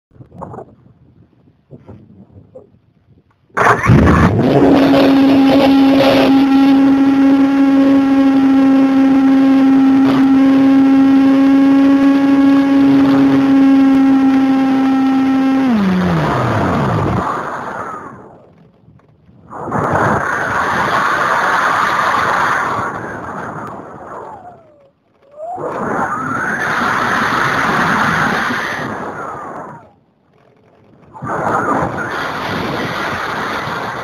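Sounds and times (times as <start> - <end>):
electric motor and propeller whine: 3.6 - 34.0.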